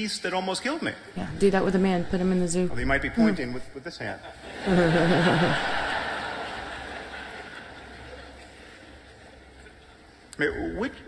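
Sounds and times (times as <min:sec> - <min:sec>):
audience laughter: 0:04.3 - 0:08.7.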